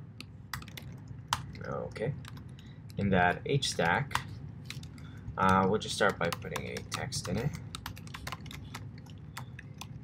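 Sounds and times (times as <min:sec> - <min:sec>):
computer keyboard typing: 0:00.5 - 0:10.0.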